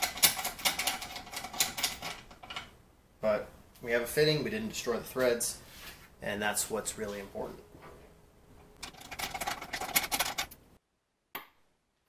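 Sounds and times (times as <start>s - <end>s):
light metallic clicks and rattles: 8.8s - 10.6s.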